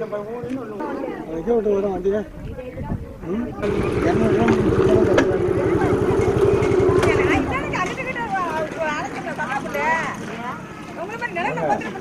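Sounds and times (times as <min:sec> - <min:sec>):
voices talking over one another: 0:00.0 - 0:12.0
engine running with low pulsing: 0:03.6 - 0:08.9.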